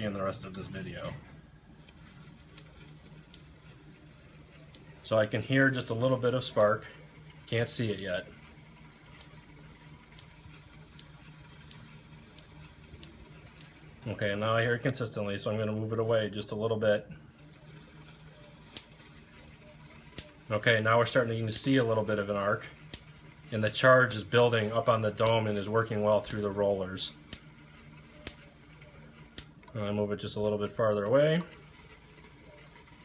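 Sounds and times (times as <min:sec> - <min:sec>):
electric spark snap: 0:01.8 - 0:15.1, 0:17.4 - 0:28.6, 0:29.2 - 0:29.6
faint sharp spark snaps: 0:18.7 - 0:18.9, 0:22.9 - 0:23.1, 0:27.3 - 0:27.5, 0:29.4 - 0:29.6.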